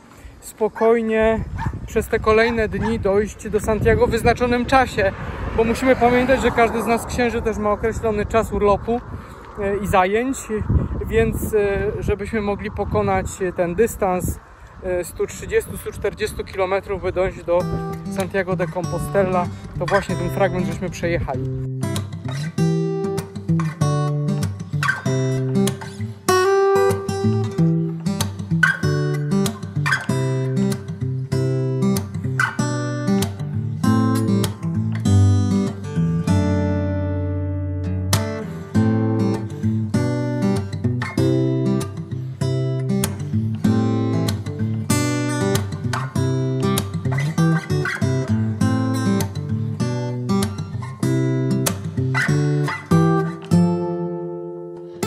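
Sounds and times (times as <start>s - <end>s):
acoustic guitar picking: 17.3s - 55.0s.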